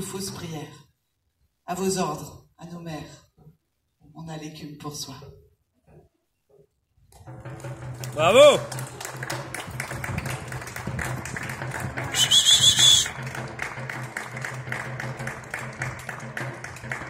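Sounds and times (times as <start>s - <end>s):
scattered clapping: 7.3s - 17.0s
loud trilling whistle: 12.1s - 13.2s.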